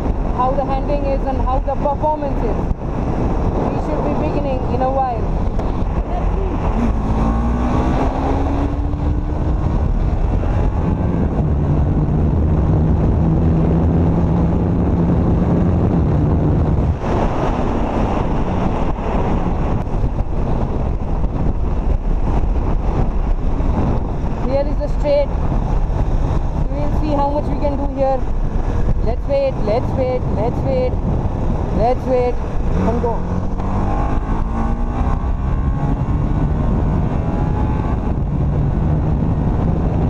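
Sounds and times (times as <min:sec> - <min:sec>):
motorcycle engine running: 0:00.0 - 0:29.6, 0:30.2 - 0:40.0
wind rush on microphone: 0:00.0 - 0:40.0.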